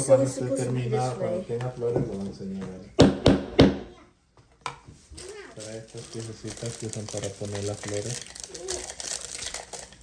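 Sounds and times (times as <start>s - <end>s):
hammer knocking on wood: 3.0s - 3.9s.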